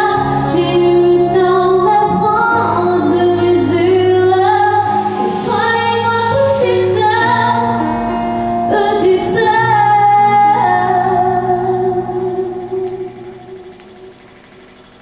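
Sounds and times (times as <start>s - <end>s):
woman singing: 0.0s - 13.5s
steady bass line: 5.2s - 15.0s.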